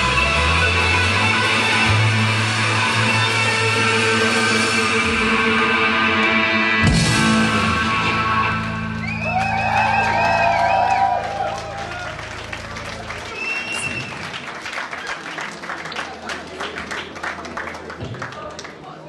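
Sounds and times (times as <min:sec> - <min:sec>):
rock band final chord: 0:00.2 - 0:09.6
audience cheering and clapping: 0:08.0 - 0:18.8.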